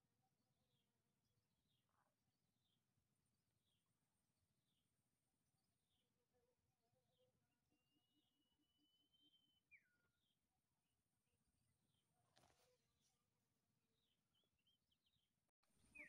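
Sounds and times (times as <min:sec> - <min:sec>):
faint bird chirps: 0:05.8 - 0:10.4, 0:14.0 - 0:16.0.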